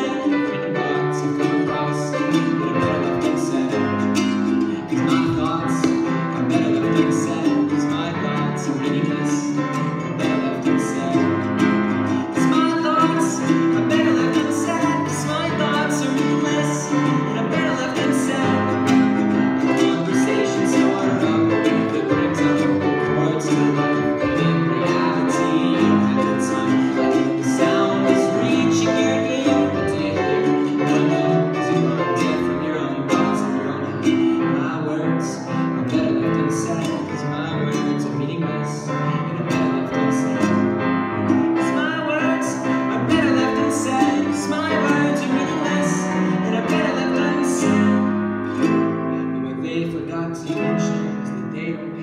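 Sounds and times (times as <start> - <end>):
acoustic guitar: 0.0 - 52.0
grand piano: 0.0 - 52.0
man singing: 0.0 - 52.0.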